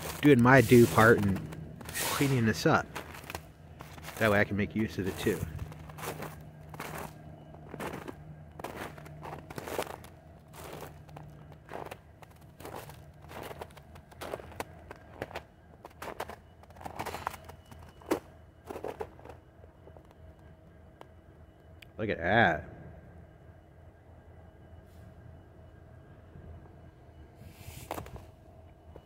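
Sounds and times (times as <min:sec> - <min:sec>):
footsteps on snow: 0:00.0 - 0:20.0, 0:27.5 - 0:28.4.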